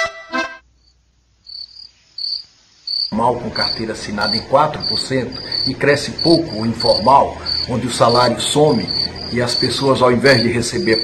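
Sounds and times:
cricket chirping: 0.6 - 11.0
faint low hum: 3.1 - 11.0.

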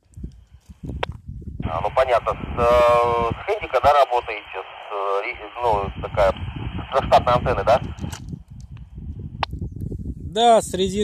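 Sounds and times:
low rumbling noise: 0.8 - 9.5.

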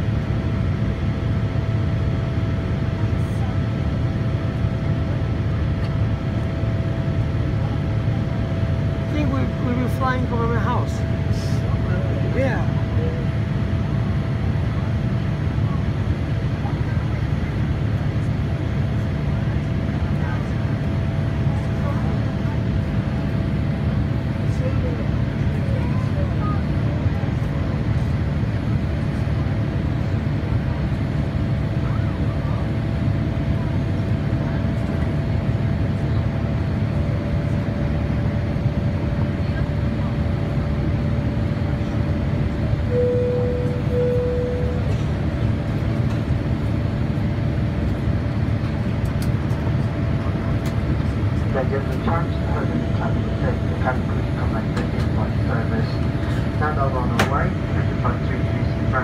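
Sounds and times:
engine and airflow rumble: 0.0 - 59.0
faint steady tone: 42.9 - 44.8
short beeps: 42.9 - 44.9.

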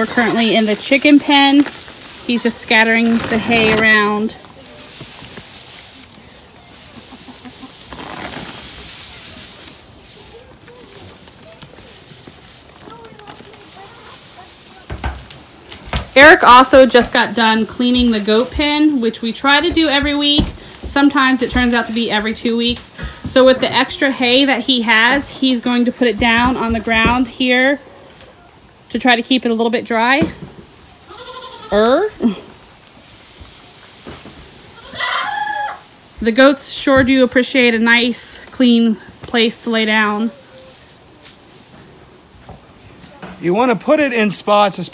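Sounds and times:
straw rustling and crackling: 0.0 - 44.9
goat bleating: 31.1 - 31.9, 34.8 - 35.8.

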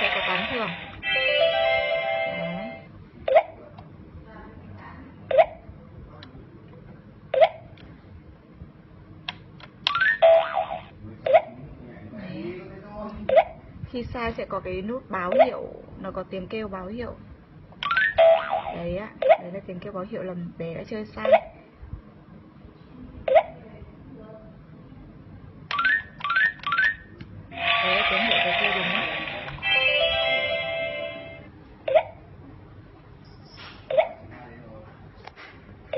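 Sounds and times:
electronic toy tones: 25.7 - 28.2.

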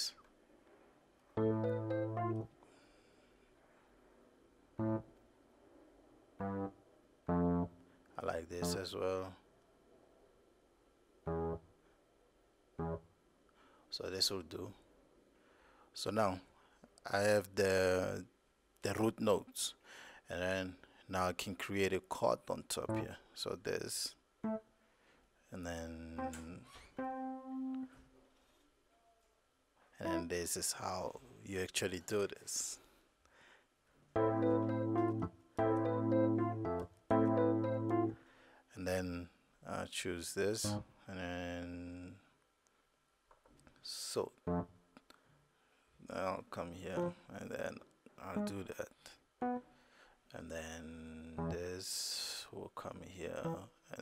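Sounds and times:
software keyboard chord: 1.4 - 2.5, 4.8 - 5.1, 6.4 - 7.9, 8.6 - 8.9, 11.3 - 11.7, 12.8 - 13.1, 22.9 - 23.1, 24.4 - 24.6, 26.2 - 27.9, 30.0 - 30.3, 34.2 - 38.2, 44.5 - 44.7, 47.0 - 47.2, 48.4 - 48.7, 49.4 - 49.7, 51.4 - 51.6, 53.4 - 53.6.

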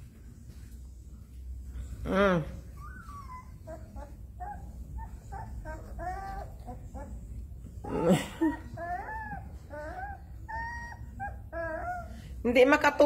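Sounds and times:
puppies whimpering and squealing: 2.7 - 12.4.

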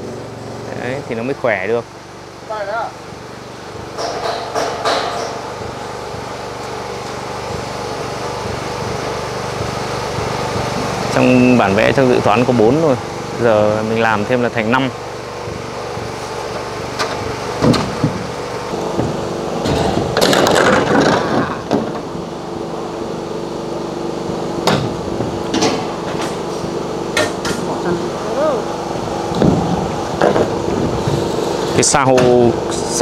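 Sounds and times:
steady motor hum: 0.0 - 33.0
knocks on metal sheets: 3.8 - 6.3.

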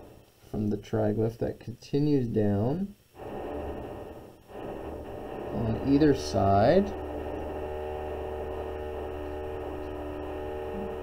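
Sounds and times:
construction machine drone: 3.2 - 11.0.

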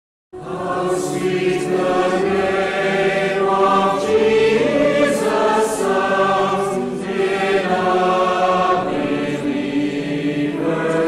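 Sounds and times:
choir singing held notes: 0.4 - 11.0.

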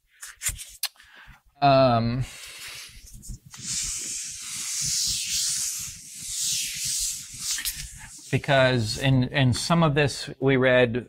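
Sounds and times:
eraser wiping whiteboard: 2.3 - 9.1.

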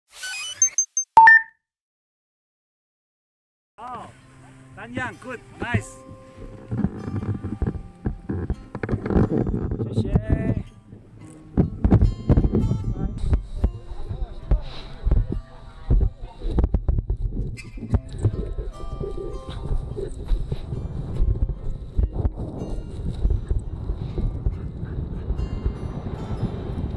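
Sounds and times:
wind buffeting microphone: 6.4 - 26.9.

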